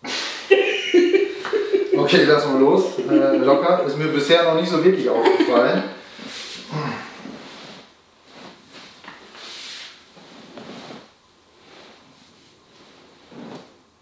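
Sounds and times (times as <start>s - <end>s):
rustling on padded bench: 6.1s - 14.0s
clothing shifting: 7.2s - 13.9s.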